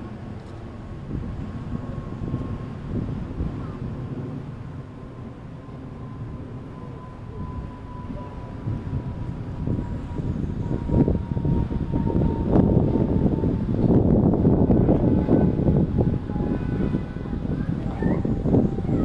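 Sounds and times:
low uneven city rumble: 0:00.0 - 0:19.0
faint high tone: 0:05.7 - 0:08.7, 0:16.2 - 0:19.0.

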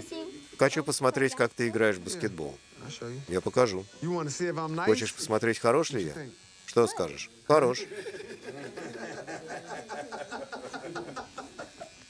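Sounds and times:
man chuckling: 0:07.8 - 0:12.0.

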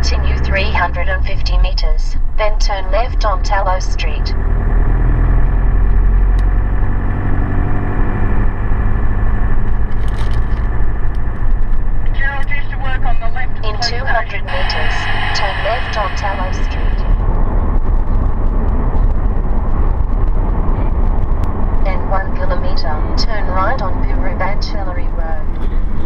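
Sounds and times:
voices: 0:00.0 - 0:04.4, 0:12.1 - 0:17.2, 0:21.8 - 0:25.4
vehicle engine and road drone: 0:00.0 - 0:26.0.

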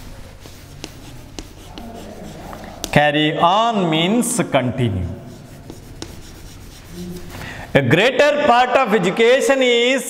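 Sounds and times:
chalk tapping on board: 0:00.0 - 0:03.0, 0:05.3 - 0:07.3
chalk scratching on blackboard: 0:00.0 - 0:03.2, 0:05.0 - 0:07.5.

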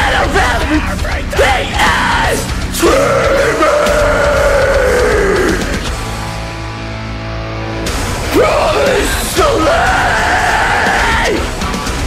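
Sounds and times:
man screaming vocals: 0:00.0 - 0:05.8, 0:08.3 - 0:11.5
heavy metal band music: 0:00.0 - 0:12.0.

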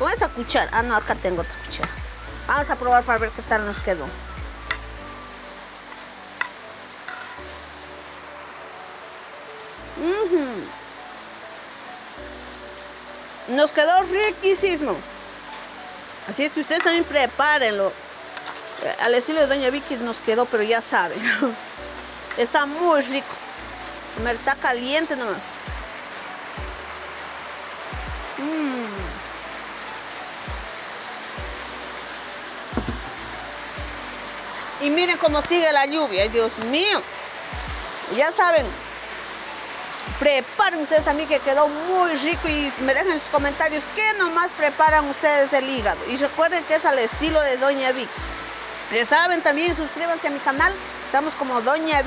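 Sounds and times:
quiet background music: 0:00.0 - 0:52.0
rain falling: 0:00.0 - 0:52.0.

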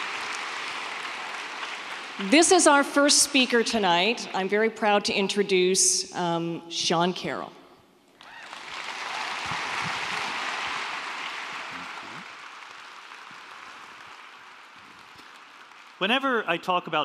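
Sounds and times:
large audience applauding: 0:00.0 - 0:03.2, 0:08.2 - 0:17.0.

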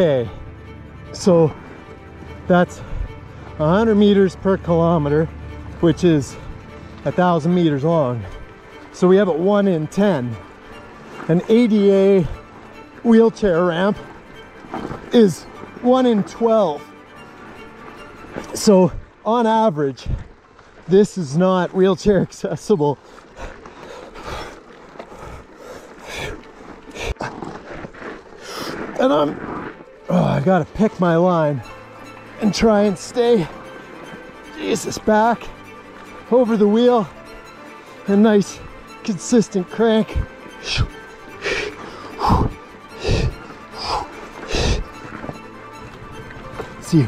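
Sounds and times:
background music: 0:00.0 - 0:27.2, 0:28.4 - 0:47.0
hard rhythmic breathing: 0:01.5 - 0:03.6, 0:23.0 - 0:29.0, 0:40.1 - 0:45.5
man breathing hard: 0:41.4 - 0:44.9.

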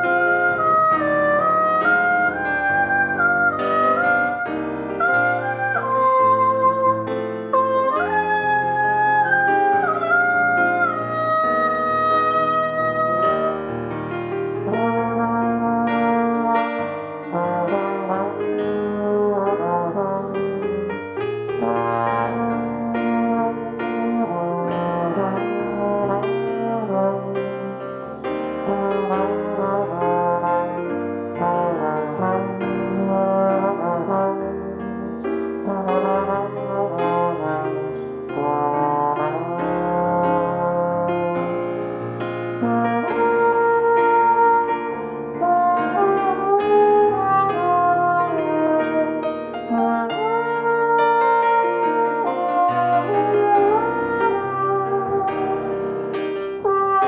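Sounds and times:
trumpet playing hymn melody: 0:00.0 - 0:27.8, 0:28.6 - 0:57.0
keyboard piano accompaniment: 0:00.0 - 0:57.0
trombone playing melody: 0:00.0 - 0:57.0.

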